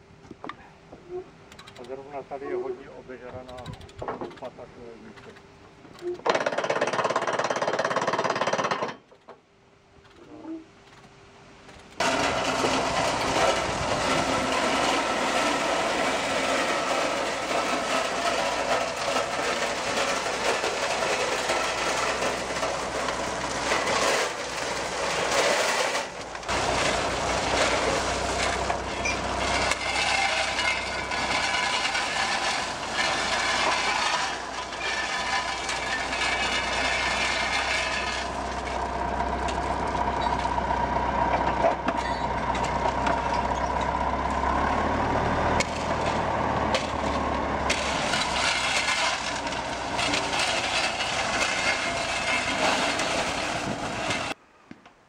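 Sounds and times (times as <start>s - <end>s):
shovels scraping in gravel: 11.7s - 40.6s, 45.5s - 54.4s
gravel pouring and rattling: 12.0s - 54.4s.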